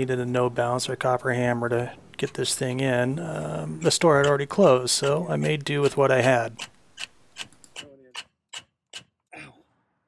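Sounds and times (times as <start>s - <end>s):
hand tool metallic clicks: 5.0s - 9.1s.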